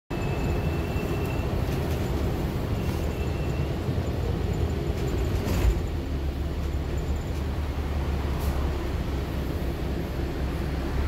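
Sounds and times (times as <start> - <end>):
bus engine and road rumble: 0.1 - 11.0.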